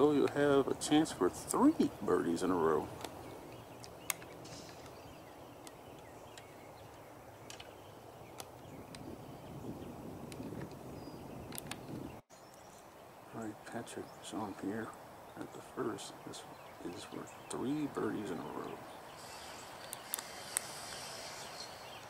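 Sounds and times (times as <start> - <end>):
faint outdoor background: 0.0 - 22.0.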